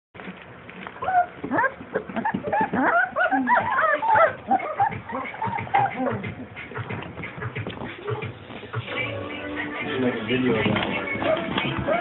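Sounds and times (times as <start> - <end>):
puppy whining and yelping: 1.0 - 6.6, 11.2 - 12.0.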